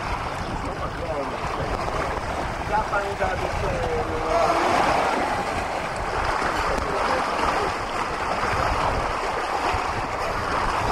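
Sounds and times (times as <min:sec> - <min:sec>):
water rushing along a hull: 0:00.0 - 0:10.9
wind rumbling on microphone: 0:00.0 - 0:10.9.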